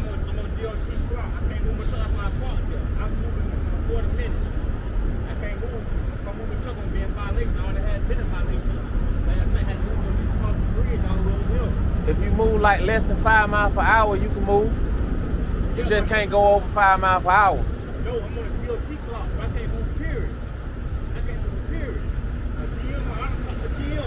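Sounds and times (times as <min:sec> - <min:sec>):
heavy trucks and traffic rumbling: 0:00.0 - 0:24.0.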